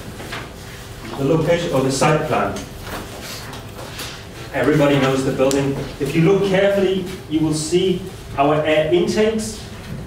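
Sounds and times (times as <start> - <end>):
man speaking: 1.1 - 2.7, 4.5 - 9.7.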